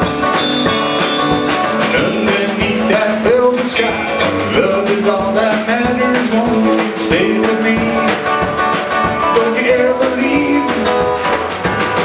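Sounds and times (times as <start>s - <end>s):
bass guitar: 0.0s - 12.0s
drum hits: 0.0s - 12.0s
electric guitar: 0.0s - 12.0s.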